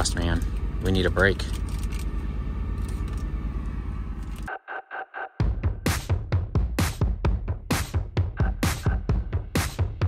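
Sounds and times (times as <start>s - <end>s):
diesel engine running: 0.0s - 4.6s
electronic music with pulsing tones: 4.4s - 10.0s.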